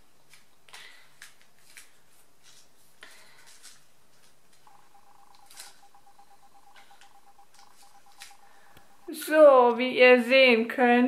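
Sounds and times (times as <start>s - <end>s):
steady beep tone: 4.7s - 9.3s.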